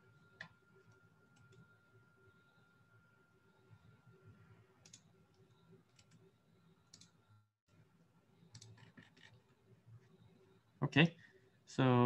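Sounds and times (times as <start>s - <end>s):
computer clicks: 4.8s - 6.3s, 6.9s - 7.2s, 8.4s - 9.4s.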